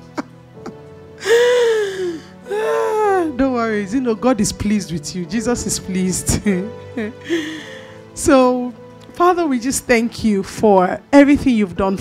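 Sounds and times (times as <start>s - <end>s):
woman laughing into a microphone: 0.0s - 1.7s.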